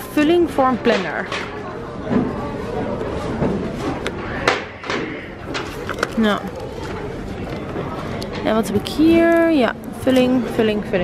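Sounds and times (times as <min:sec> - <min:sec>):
store background noise: 0:00.0 - 0:11.0.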